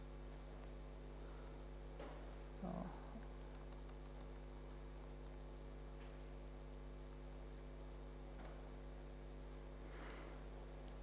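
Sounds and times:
steady electrical hum: 0.0s - 11.0s
keyboard typing: 3.1s - 5.6s, 7.3s - 7.7s, 8.4s - 8.7s.

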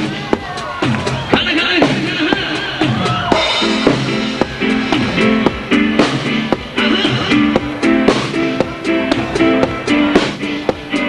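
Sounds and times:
drum kit steady beat: 0.0s - 11.0s.

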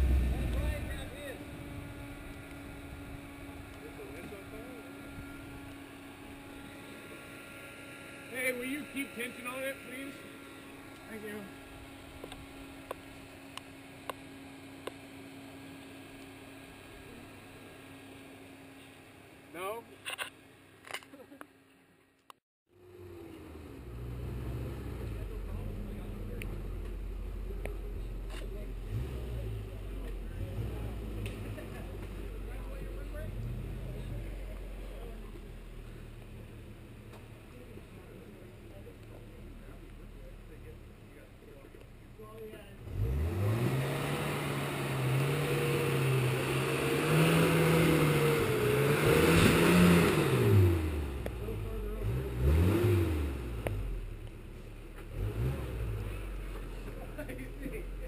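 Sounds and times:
truck engine revving: 0.0s - 7.0s, 23.0s - 36.5s, 42.8s - 54.1s, 54.9s - 58.0s.

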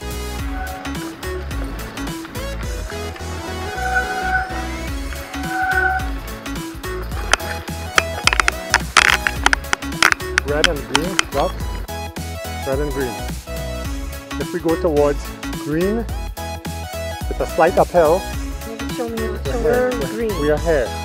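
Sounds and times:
disc brakes squealing: 0.0s - 6.3s.

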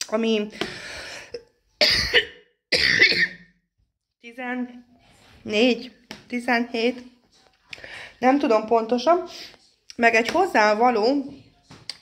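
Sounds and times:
woman coughing: 1.8s - 3.5s.

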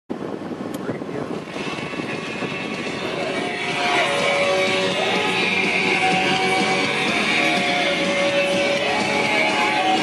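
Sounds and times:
radio music: 1.2s - 10.0s.

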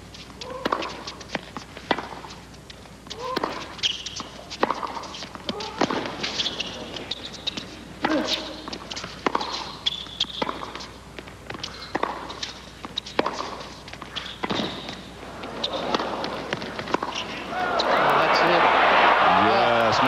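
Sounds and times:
tennis shoes squeaking: 0.1s - 18.4s
tennis racquets striking ball: 0.3s - 18.3s.

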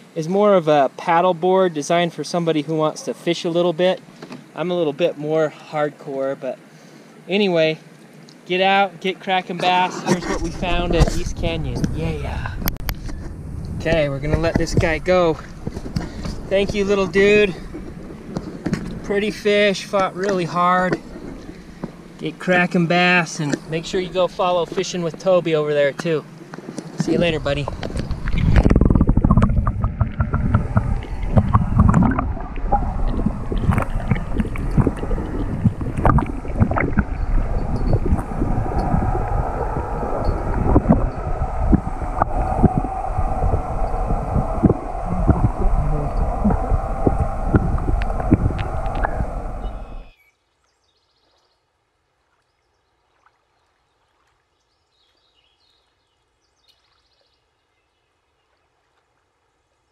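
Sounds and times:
muffled underwater churning rumble: 9.6s - 50.2s.

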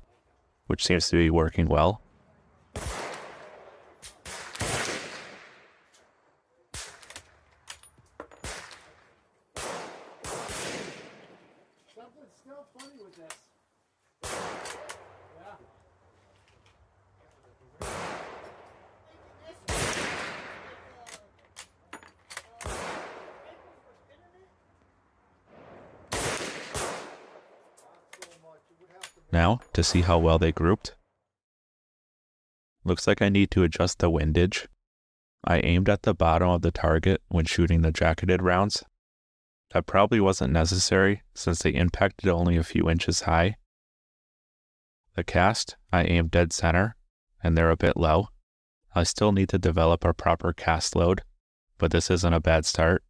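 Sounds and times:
rifle shots with ringing tail: 2.7s - 5.8s, 8.3s - 11.7s, 14.2s - 15.4s, 17.8s - 19.0s, 19.7s - 21.0s, 22.6s - 23.7s, 25.5s - 27.7s
rifle bolt clicks: 21.0s - 21.7s, 27.8s - 29.2s.

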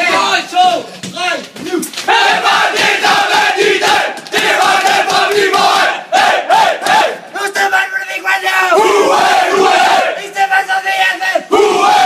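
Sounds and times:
footballers chanting and shouting: 0.0s - 12.0s.

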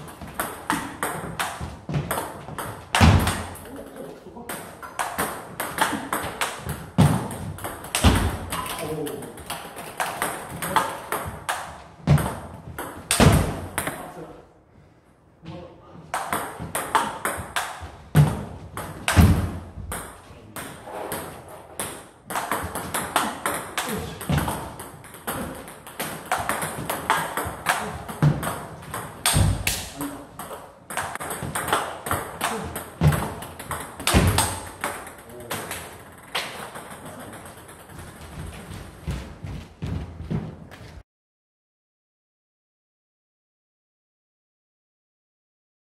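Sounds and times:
ball clicking off bats: 4.5s - 14.0s, 21.8s - 38.6s.

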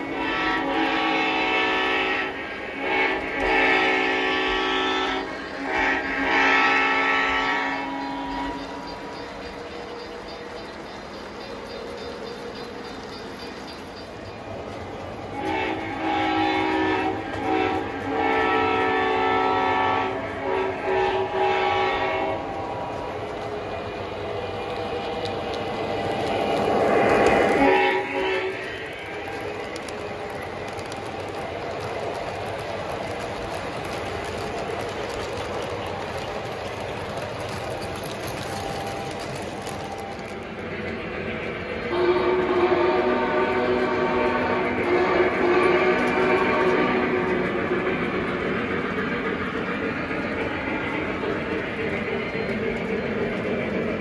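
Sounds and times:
model train electronic horn: 0.0s - 9.0s, 15.4s - 22.4s, 26.9s - 29.3s, 41.9s - 47.5s
model train rumbling past: 0.0s - 54.0s
wheels clicking over track joints: 8.3s - 18.9s, 22.4s - 42.5s.

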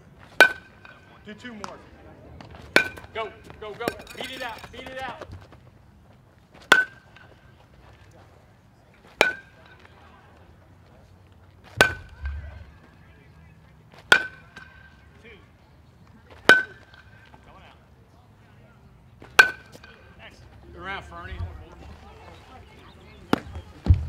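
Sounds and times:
metal bat hitting ball: 0.4s - 1.0s, 2.7s - 3.1s, 6.7s - 7.0s, 9.2s - 9.5s, 11.8s - 12.7s, 19.3s - 20.0s.

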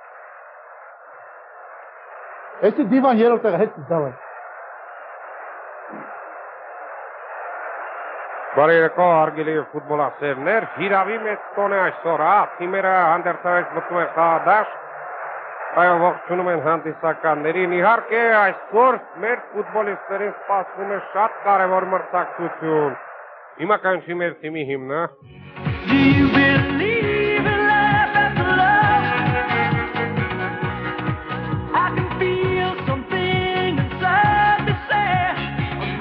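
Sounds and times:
man narrating: 2.6s - 4.2s, 8.6s - 14.8s, 15.8s - 23.0s, 23.6s - 25.2s.

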